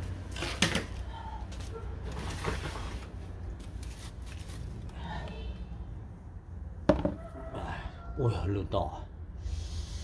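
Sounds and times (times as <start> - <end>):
bamboo tube knocking on plastic basin: 6.9 - 7.2.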